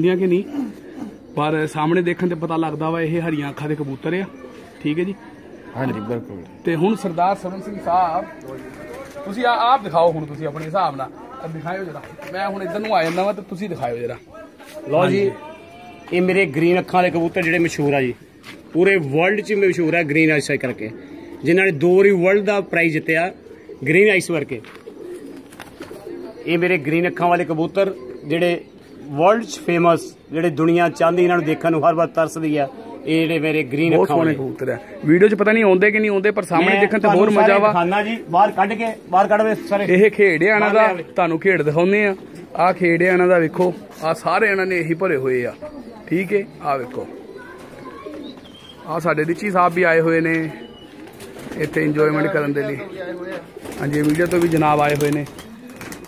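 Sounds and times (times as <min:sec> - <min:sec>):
pigeons cooing softly: 0:00.0 - 0:56.0
man speaking: 0:05.8 - 0:24.7, 0:26.5 - 0:47.2, 0:51.6 - 0:55.4.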